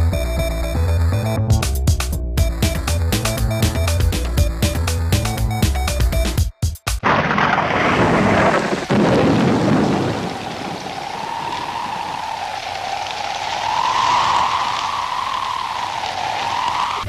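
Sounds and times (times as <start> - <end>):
rain hissing: 7.0 - 17.0
thunder rumble: 7.0 - 17.0.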